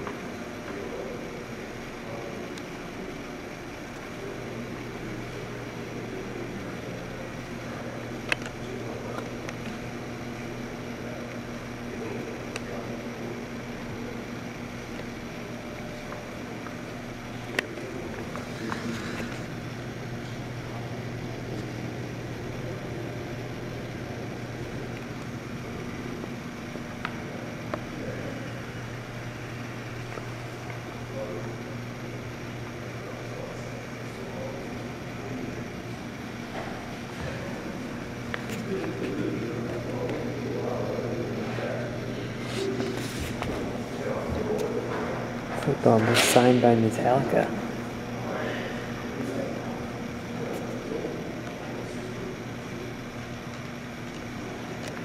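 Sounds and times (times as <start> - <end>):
low indoor room hum: 0.0 - 55.0.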